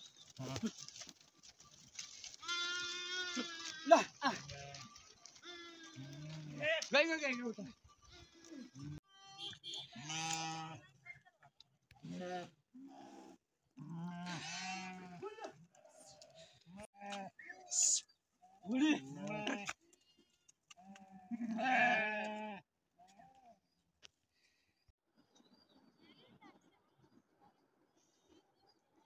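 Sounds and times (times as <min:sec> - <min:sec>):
sheep bleating: 0:02.4 - 0:06.9, 0:07.6 - 0:10.9, 0:13.8 - 0:15.4, 0:18.9 - 0:19.8, 0:20.8 - 0:23.4.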